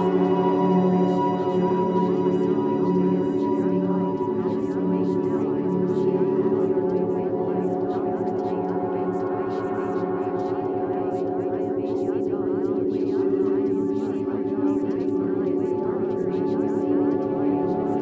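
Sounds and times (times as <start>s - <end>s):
ringing tone drone: 0.0s - 8.2s.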